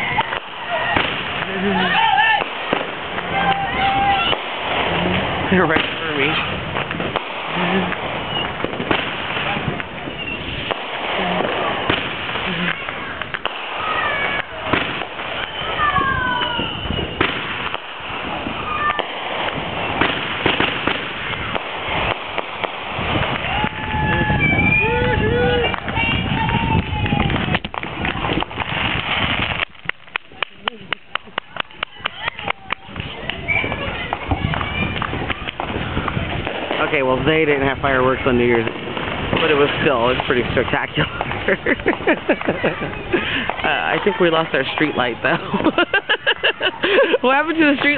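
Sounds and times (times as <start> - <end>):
falling firework whistles: 0.0 - 29.8, 33.3 - 34.2
firecrackers crackling: 0.0 - 47.9
firework bangs: 0.0 - 47.9.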